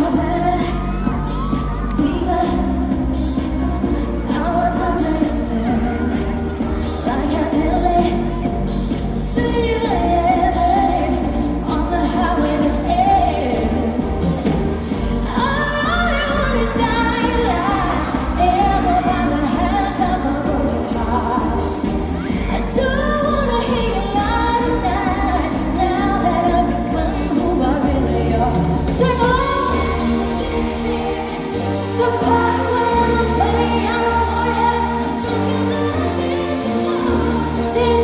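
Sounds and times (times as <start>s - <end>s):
band playing pop music: 0.0s - 38.0s
woman singing: 0.0s - 38.0s.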